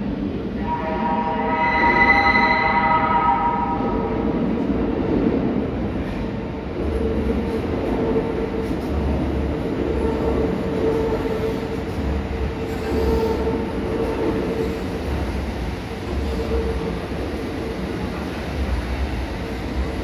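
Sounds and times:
train wheels rumbling on rails: 0:00.0 - 0:20.0
high-pitched whine: 0:00.6 - 0:04.2.

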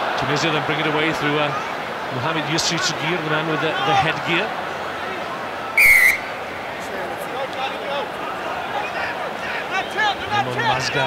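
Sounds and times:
stadium crowd murmur: 0:00.0 - 0:11.0
referee's whistle blast: 0:05.8 - 0:06.4.

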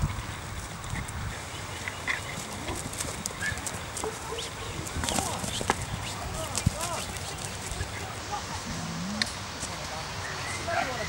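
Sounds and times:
sheep hooves shuffling on dirt: 0:00.0 - 0:10.1.

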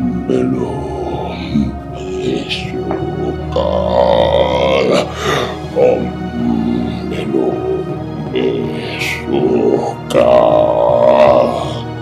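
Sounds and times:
drawn-out vocal sound: 0:00.0 - 0:12.0
film background music: 0:00.0 - 0:12.0.

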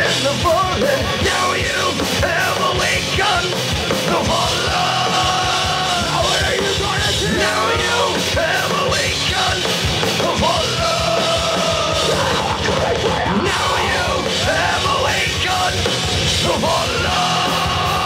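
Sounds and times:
dense drumming: 0:00.0 - 0:18.0
heavy rock band playing: 0:00.0 - 0:18.0
man yelling and singing: 0:00.0 - 0:18.0.

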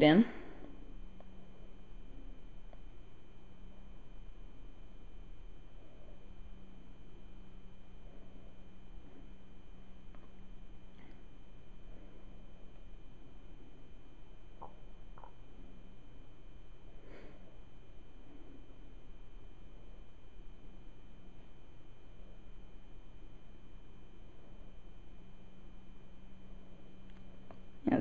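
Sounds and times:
faint high steady tones: 0:00.0 - 0:28.0
steady low hum: 0:00.0 - 0:28.0.

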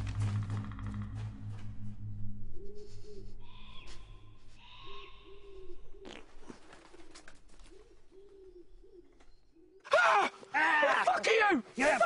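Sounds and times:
bird hooting low: 0:00.2 - 0:09.9.

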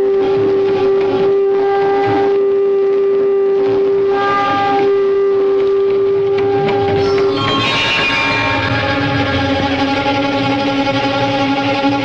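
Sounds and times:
conch shell blown: 0:00.0 - 0:10.9.

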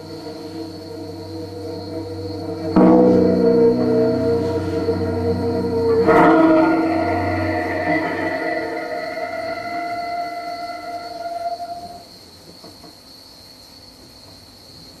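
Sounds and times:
cello and sampler music: 0:00.0 - 0:11.9
faint high steady tone: 0:00.0 - 0:12.0.

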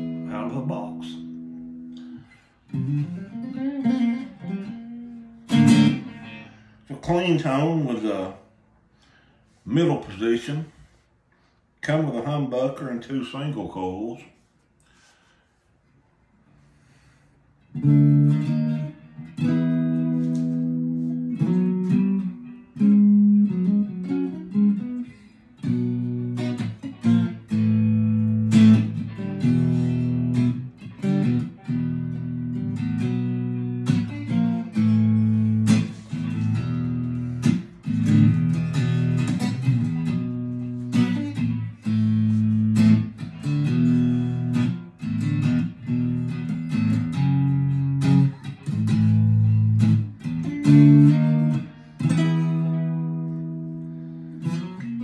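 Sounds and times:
clean electric guitar chords: 0:00.0 - 0:06.9, 0:17.7 - 0:55.0.

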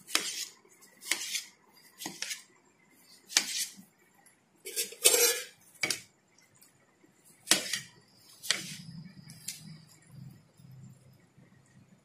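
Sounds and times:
knife chopping fruit in metal bowl: 0:00.0 - 0:02.5, 0:03.3 - 0:03.8, 0:04.7 - 0:06.1, 0:07.4 - 0:08.8.

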